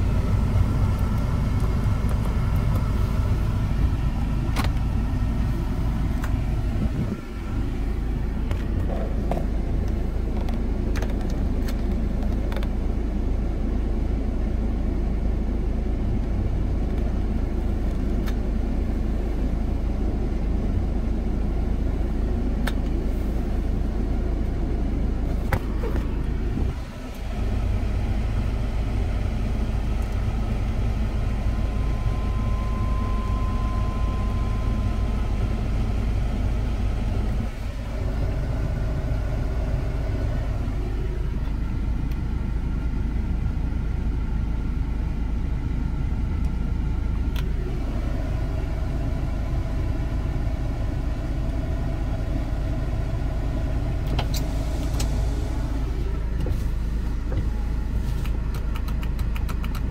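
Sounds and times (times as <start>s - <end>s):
car engine idling: 0.0s - 59.9s.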